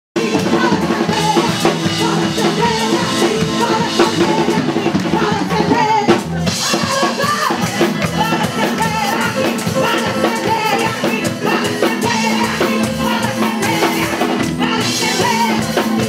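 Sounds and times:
drum kit beat: 0:00.2 - 0:16.0
woman singing into a microphone: 0:00.2 - 0:16.0.

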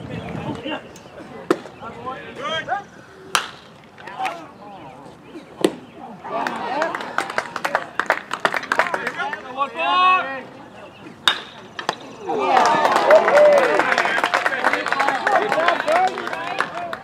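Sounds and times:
baseball bat cracks: 0:03.3 - 0:04.4, 0:11.2 - 0:12.1.

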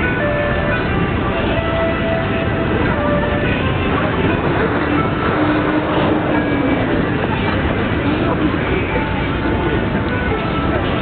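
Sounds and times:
busy street and crowd noise: 0:00.0 - 0:11.0.

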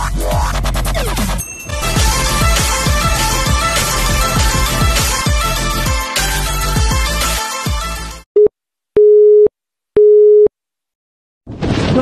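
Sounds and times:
telephone busy signal beeps: 0:09.0 - 0:10.5.

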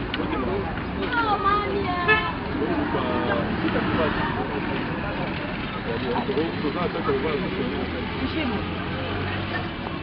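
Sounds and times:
traffic: 0:00.0 - 0:10.0
voices talking: 0:00.0 - 0:10.0.

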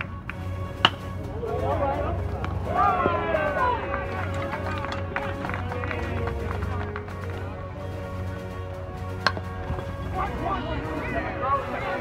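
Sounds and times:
music playing: 0:00.0 - 0:12.0
metal bat hitting ball: 0:00.8 - 0:01.2, 0:09.2 - 0:09.9.

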